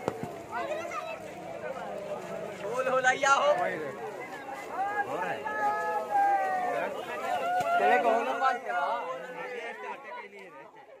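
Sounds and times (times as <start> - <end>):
men chattering and calling out: 0.0 - 10.9.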